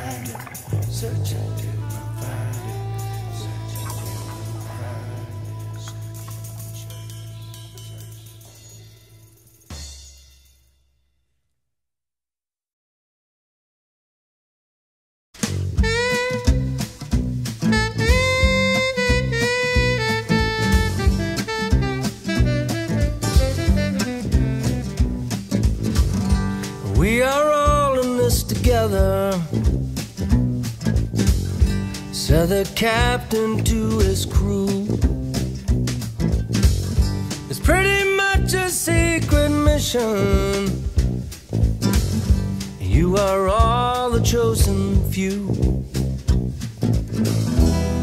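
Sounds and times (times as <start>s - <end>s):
blues-rock band playing: 0.0s - 8.6s, 15.4s - 48.0s
bending guitar notes: 0.0s - 9.8s, 15.4s - 48.0s
band final hit with cymbal: 9.6s - 10.8s.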